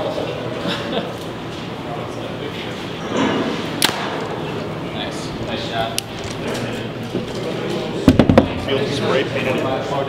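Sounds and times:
background chatter: 0.0 - 10.0
arrow striking foam target: 3.2 - 4.2.

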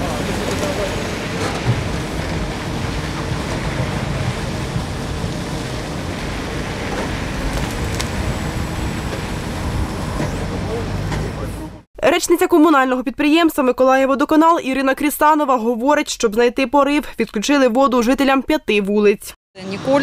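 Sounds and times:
diesel engine running: 0.0 - 11.9.

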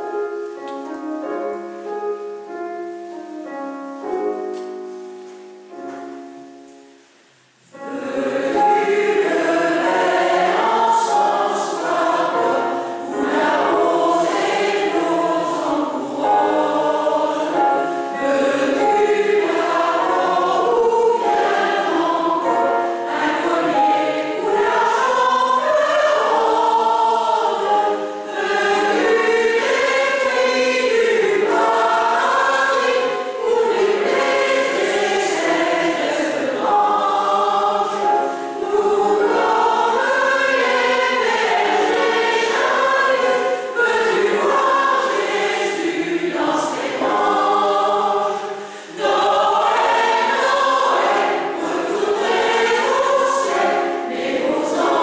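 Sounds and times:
mixed choir singing: 7.7 - 55.0.

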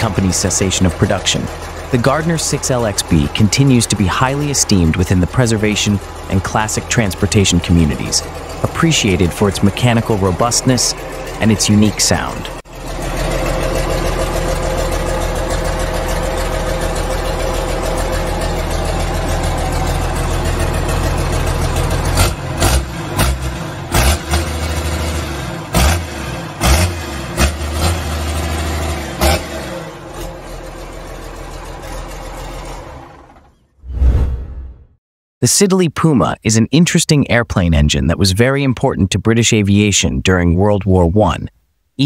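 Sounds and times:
diesel engine running: 0.0 - 33.7.

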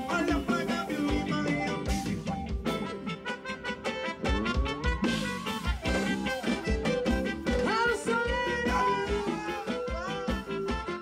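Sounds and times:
melodic lead line: 0.0 - 11.0.

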